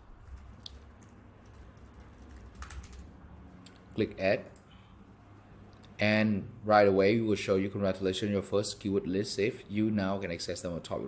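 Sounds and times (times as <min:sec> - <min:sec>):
computer keyboard typing: 0:00.2 - 0:03.2.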